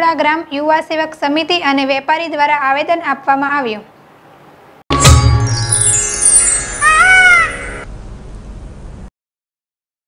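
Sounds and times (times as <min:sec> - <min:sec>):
chiming jingle music: 0:04.9 - 0:07.9
peacock call: 0:06.0 - 0:07.9.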